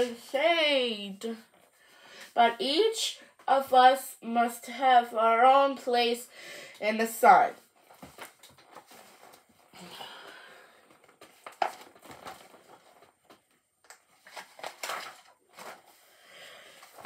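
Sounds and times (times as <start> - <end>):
paper pages turning: 7.8 - 9.6, 10.9 - 16.1, 16.7 - 17.0.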